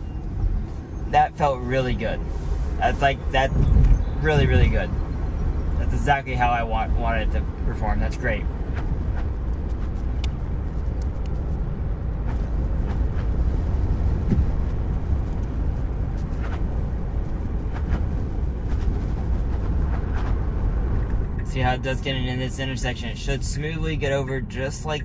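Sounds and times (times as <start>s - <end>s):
road and tyre rumble: 0.0s - 25.0s.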